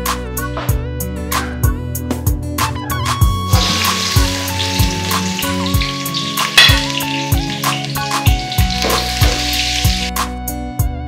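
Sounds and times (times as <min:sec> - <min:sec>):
background music with drum beat: 0:00.0 - 0:10.3
food sizzling: 0:03.5 - 0:10.2.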